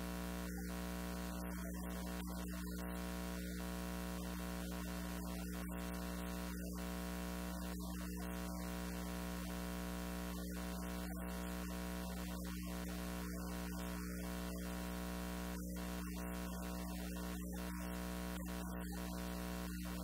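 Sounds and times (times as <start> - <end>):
electrical hum and buzz: 0.0 - 20.0.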